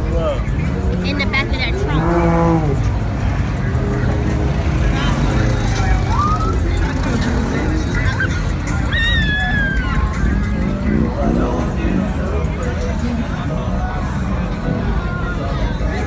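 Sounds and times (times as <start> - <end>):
rumble of street traffic: 0.0 - 16.0
people shouting: 8.7 - 10.4.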